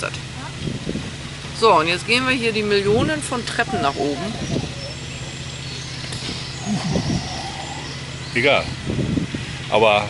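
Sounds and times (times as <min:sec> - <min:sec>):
outdoor background noise: 0:00.0 - 0:10.0
low mechanical hum: 0:00.2 - 0:09.7
brief vocal sound: 0:06.6 - 0:08.0.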